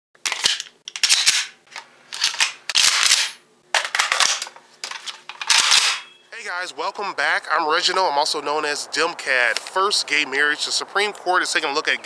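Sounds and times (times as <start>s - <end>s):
gun actions clacking: 0.2s - 6.1s.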